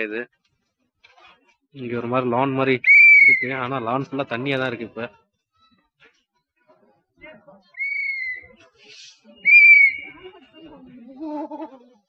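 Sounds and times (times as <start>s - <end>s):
faint distant voices: 0.0s - 12.0s
high whistled notes: 7.8s - 10.2s.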